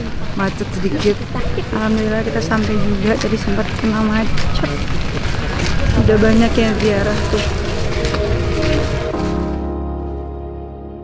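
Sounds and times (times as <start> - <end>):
faint background voices: 0.0 - 9.4
low rumbling noise: 0.0 - 11.0
woman speaking: 6.0 - 7.6.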